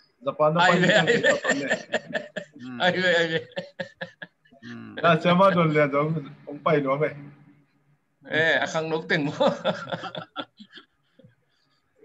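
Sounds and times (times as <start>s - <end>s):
people talking: 0.2s - 3.6s, 4.6s - 7.5s, 8.3s - 10.2s
chuckling laughter: 0.7s - 4.4s.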